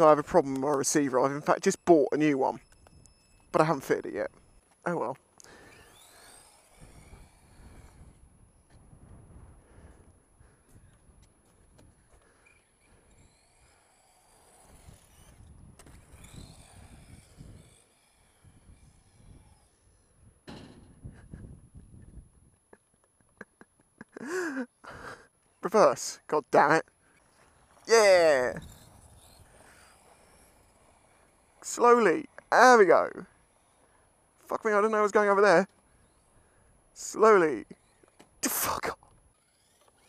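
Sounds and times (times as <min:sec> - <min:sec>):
radio-controlled car motor whine: 0:00.0 - 0:22.6, 0:26.2 - 0:40.0.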